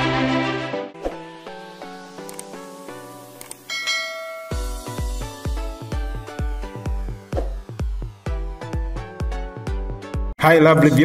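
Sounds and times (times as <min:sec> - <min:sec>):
light background music: 0:00.0 - 0:11.0
click sound effect: 0:02.2 - 0:02.6, 0:03.4 - 0:03.7
bell ding: 0:03.7 - 0:05.2.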